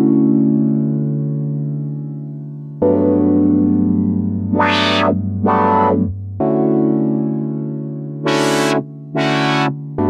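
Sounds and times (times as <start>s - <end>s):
synthesizer sustained chord: 2.9s - 9.8s.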